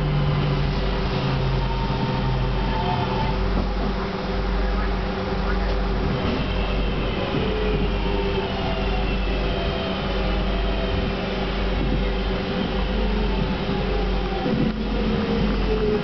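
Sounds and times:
train interior rumble: 0:00.0 - 0:16.0.

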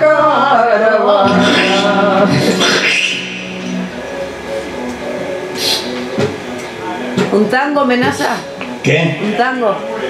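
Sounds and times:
flamenco guitar plucked notes: 0:01.1 - 0:09.4.

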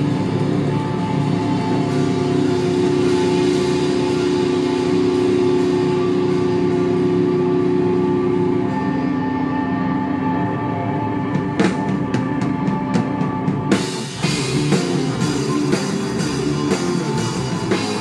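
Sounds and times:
higher steady tone: 0:00.0 - 0:18.0
rock band droning chord: 0:00.0 - 0:18.0.

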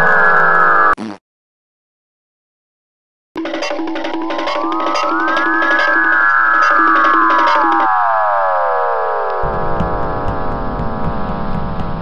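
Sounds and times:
synthesizer tones gliding in pitch: 0:03.4 - 0:11.5
low rumble: 0:09.3 - 0:12.0.

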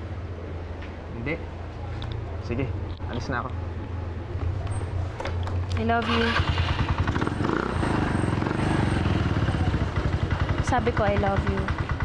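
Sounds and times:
scooter engine idling: 0:05.8 - 0:12.0.

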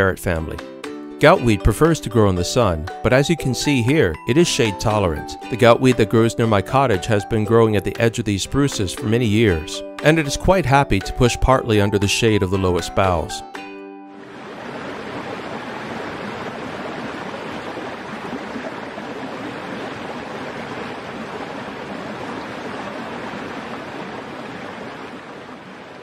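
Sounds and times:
stream water rushing: 0:14.1 - 0:26.0.

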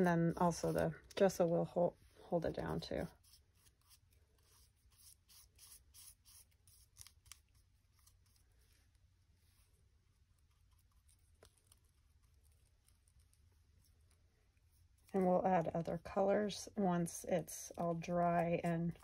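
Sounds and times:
paintbrush scratching on fabric: 0:00.0 - 0:16.4.

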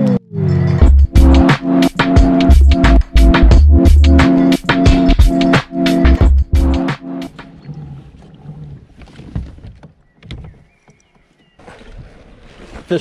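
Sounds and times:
intro music: 0:00.5 - 0:07.6.

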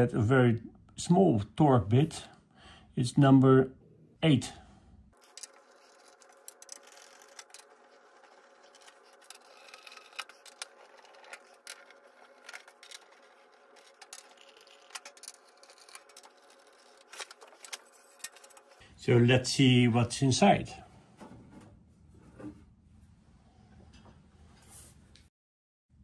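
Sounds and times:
screwdriver clicks and scrapes: 0:05.2 - 0:18.8.

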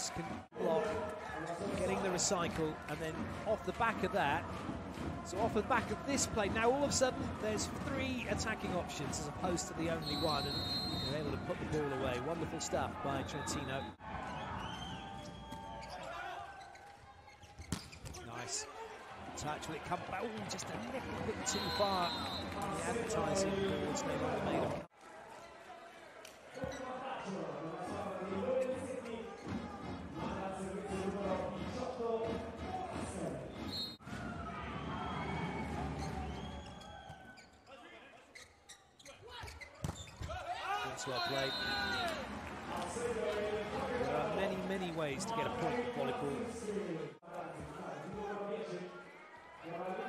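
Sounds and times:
crowd noise: 0:00.0 - 0:37.4, 0:39.1 - 0:50.0.

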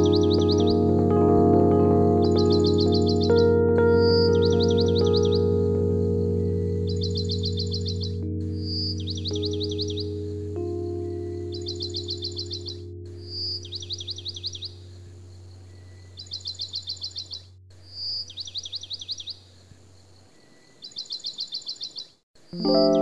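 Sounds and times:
soft ambient music: 0:00.0 - 0:17.2, 0:22.6 - 0:23.0
bird whistle and rapid chirps: 0:11.6 - 0:14.8, 0:15.8 - 0:19.4.

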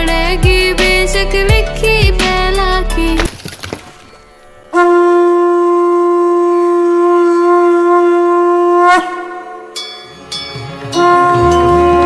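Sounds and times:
conch shell blown: 0:04.7 - 0:09.8, 0:10.9 - 0:12.0.

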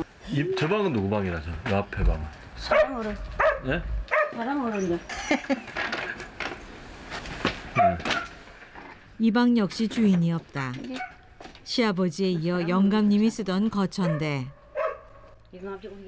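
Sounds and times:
dog barking: 0:02.6 - 0:04.6, 0:07.8 - 0:08.4, 0:14.0 - 0:15.4
women talking: 0:02.7 - 0:03.2, 0:04.3 - 0:05.4, 0:09.2 - 0:11.1, 0:11.7 - 0:14.6, 0:15.5 - 0:16.0.

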